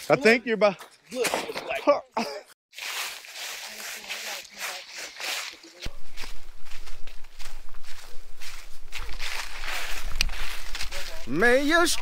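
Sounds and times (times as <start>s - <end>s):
footsteps in dry leaves: 2.7s - 12.0s.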